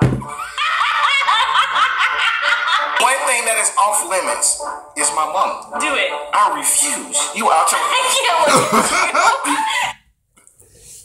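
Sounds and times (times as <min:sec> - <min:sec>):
low thud: 0:00.0 - 0:00.3
woman laughing hard: 0:00.3 - 0:03.0, 0:08.4 - 0:09.9.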